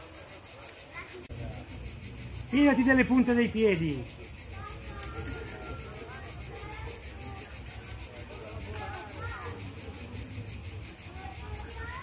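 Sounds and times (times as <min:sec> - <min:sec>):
faint distant voices: 0:00.0 - 0:12.0
high-pitched insect chorus: 0:00.0 - 0:12.0.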